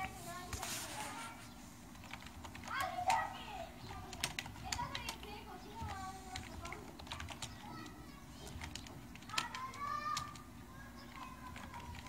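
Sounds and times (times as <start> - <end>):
person speaking: 0.0 - 1.6, 2.6 - 12.0
computer keyboard clicks: 1.9 - 12.0.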